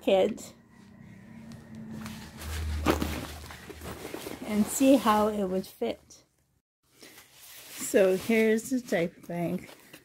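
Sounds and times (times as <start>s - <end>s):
low handling rumble: 0.4s - 5.5s.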